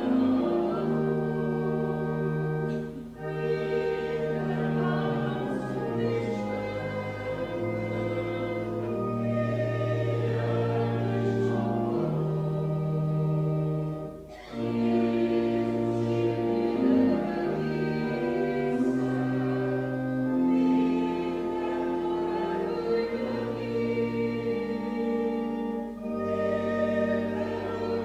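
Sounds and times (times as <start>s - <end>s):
congregation singing a hymn: 0.0s - 28.0s
organ accompaniment: 0.0s - 28.0s.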